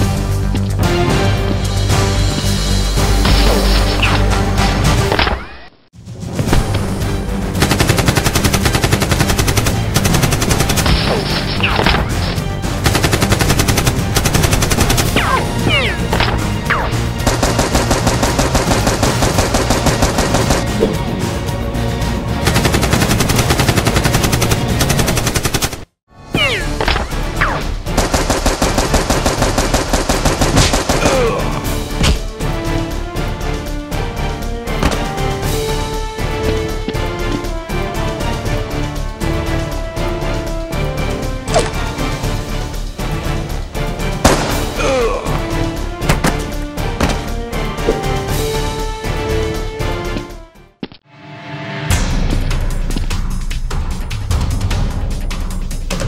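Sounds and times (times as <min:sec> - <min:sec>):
background music: 0:00.0 - 0:56.0
rapid automatic gunfire effects: 0:07.6 - 0:11.1, 0:12.8 - 0:15.2, 0:17.2 - 0:20.6, 0:22.4 - 0:25.9, 0:27.9 - 0:31.2.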